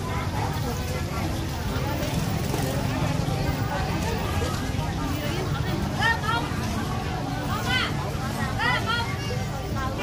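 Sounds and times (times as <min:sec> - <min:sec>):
background bustle: 0:00.0 - 0:10.0
people talking: 0:00.0 - 0:10.0.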